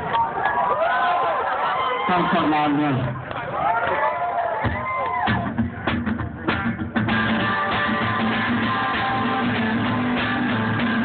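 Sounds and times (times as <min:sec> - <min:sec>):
guitar strums: 0:04.6 - 0:11.0
live band playing: 0:04.6 - 0:11.0.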